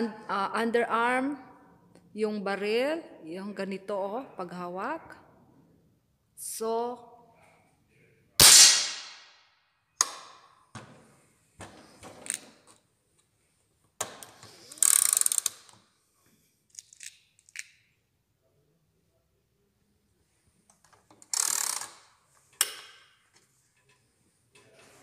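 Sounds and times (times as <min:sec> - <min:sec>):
air rifle shot: 0:08.4 - 0:09.3
sharp crack: 0:08.4 - 0:09.4.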